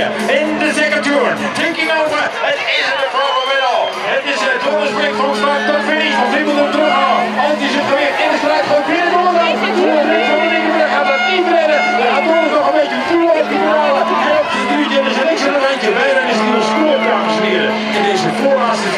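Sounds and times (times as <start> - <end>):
crowd shouting and cheering: 0.0 - 18.9.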